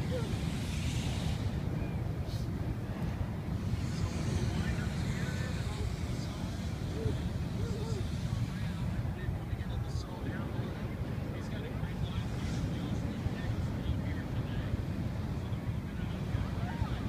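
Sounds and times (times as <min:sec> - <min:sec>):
faint voices: 0:00.0 - 0:17.0
wind buffeting microphone: 0:00.0 - 0:17.0.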